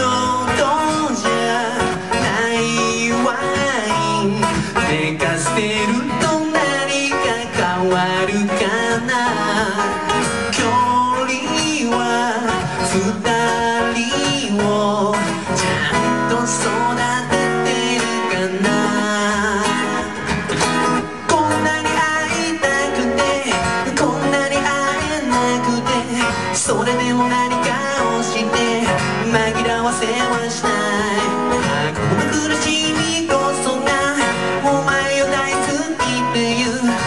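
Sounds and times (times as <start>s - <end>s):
acoustic guitar playing: 0.0s - 37.0s.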